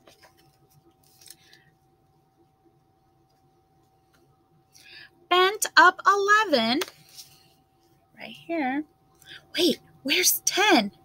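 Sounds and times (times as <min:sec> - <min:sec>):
soft book page rustle: 0:00.0 - 0:02.5, 0:06.8 - 0:08.1.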